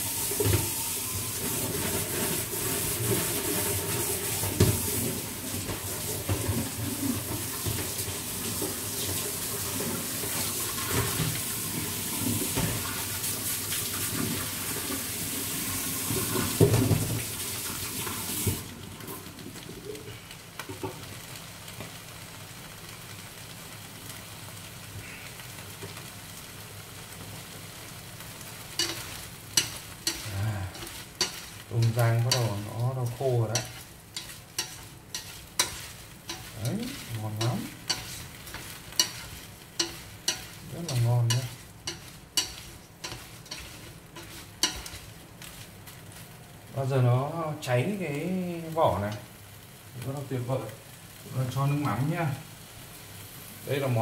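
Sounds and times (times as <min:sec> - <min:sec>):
shrimp sizzling in a pan: 0:00.0 - 0:54.0
chopsticks scraping a pan: 0:00.2 - 0:04.9, 0:28.6 - 0:46.3.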